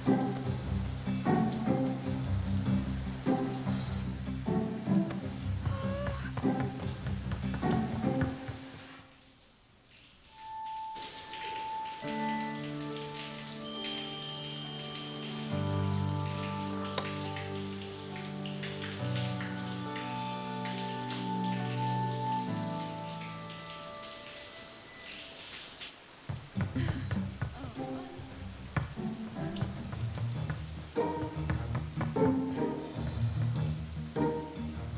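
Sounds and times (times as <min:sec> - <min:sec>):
slow background music chords: 0:00.0 - 0:09.0, 0:10.4 - 0:25.5, 0:26.4 - 0:34.9
shower spray running: 0:00.0 - 0:34.9.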